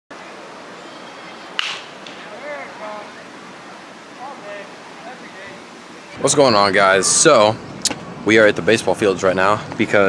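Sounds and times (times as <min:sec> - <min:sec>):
bat hitting baseball: 0:01.6 - 0:02.3.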